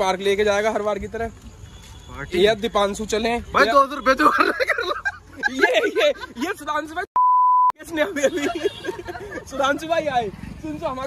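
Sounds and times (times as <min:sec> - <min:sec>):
censor bleep: 0:07.2 - 0:07.8.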